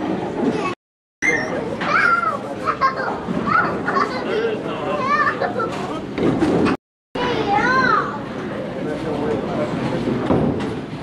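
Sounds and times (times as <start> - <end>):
chatter of voices: 0.2 - 6.3.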